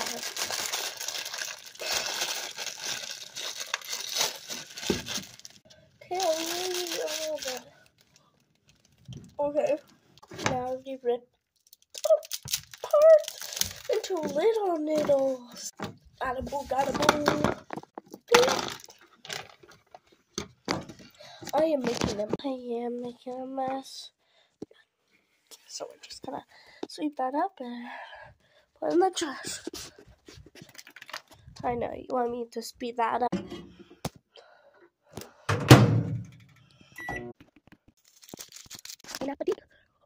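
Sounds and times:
brittle object cracking: 0.0s - 9.9s, 11.6s - 14.4s, 30.6s - 31.3s, 38.0s - 39.4s
faint crackle: 0.0s - 10.2s.

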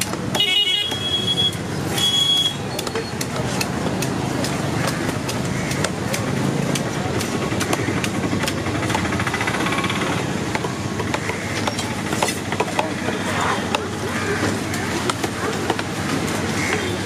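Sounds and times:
rumble of engines: 0.0s - 17.0s
distant voices: 1.7s - 17.0s
cleavers knocking on wooden blocks: 2.8s - 17.0s.

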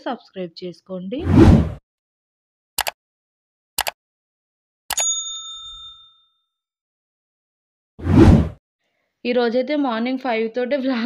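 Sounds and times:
short whoosh: 1.2s - 1.8s, 8.0s - 8.6s
notification bell ding: 4.9s - 6.4s.

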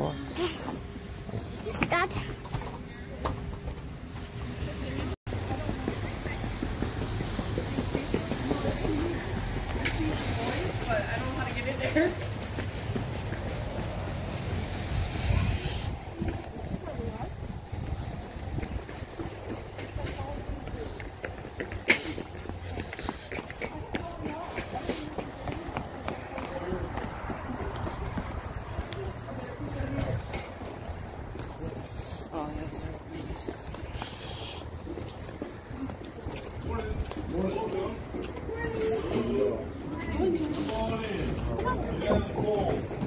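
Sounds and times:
people talking outdoors: 0.0s - 43.0s.

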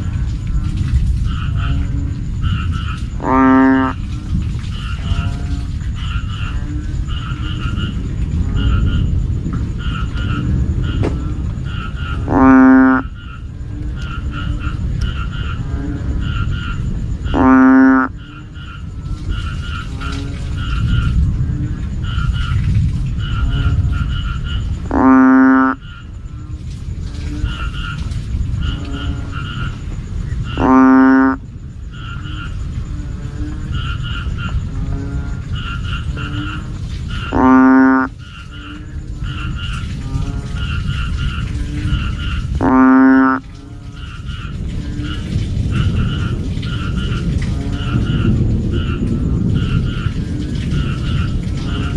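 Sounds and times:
chorus of faint quick frog calls: 0.0s - 51.9s
frog deep droning calls: 0.0s - 51.9s.

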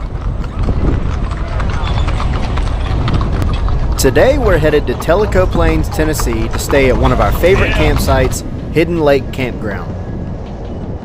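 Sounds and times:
cart rumbling: 0.0s - 11.0s
hooves clip-clopping on pavement: 0.0s - 11.0s.

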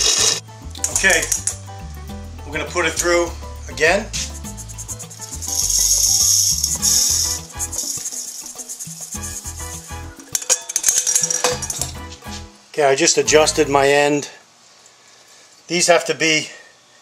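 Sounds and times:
grain and metal rattling: 0.0s - 1.6s, 2.7s - 12.3s
grain sliding into hopper: 5.4s - 10.0s.

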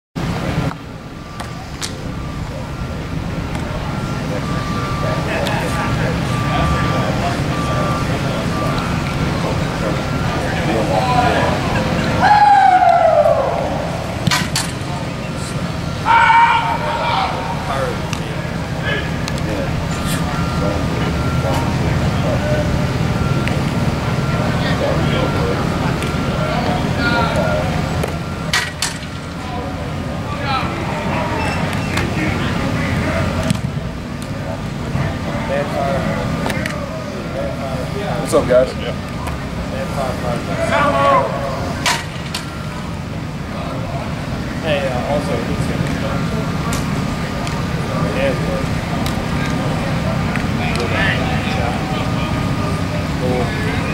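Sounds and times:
distant indistinct voices: 0.2s - 53.9s
long shout sliding down in pitch: 12.2s - 13.9s.

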